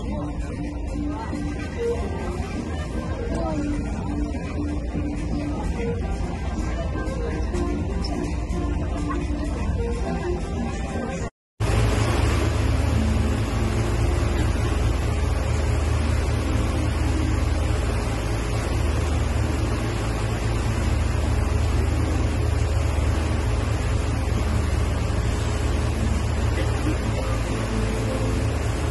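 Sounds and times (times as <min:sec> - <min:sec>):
boat engine droning: 0:00.0 - 0:28.9
water noise: 0:00.0 - 0:28.9
wind: 0:00.0 - 0:28.9.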